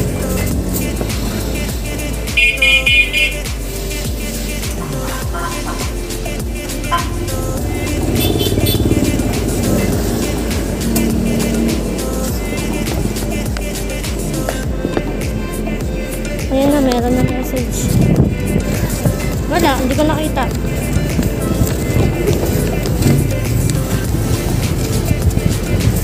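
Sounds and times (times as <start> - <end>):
background music: 0.0 - 26.0
rumbling and rubbing on microphone: 0.0 - 26.0.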